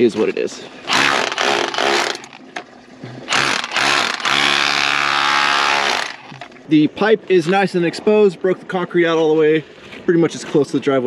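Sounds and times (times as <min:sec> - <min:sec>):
rotary hammer chiselling concrete: 0:00.9 - 0:02.4, 0:03.3 - 0:06.4.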